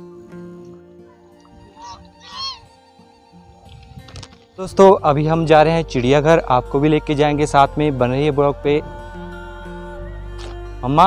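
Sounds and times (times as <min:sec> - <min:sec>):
faint background music: 0:00.0 - 0:11.0
goose honking: 0:01.7 - 0:02.7.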